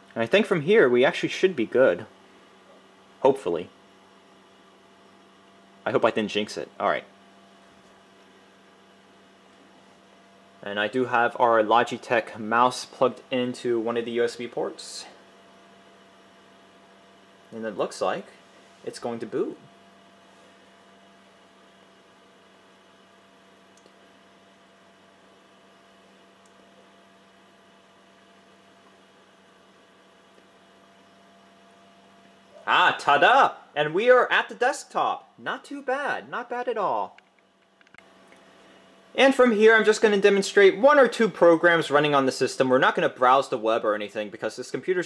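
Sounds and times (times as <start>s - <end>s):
computer hum with hiss: 0.0s - 45.0s.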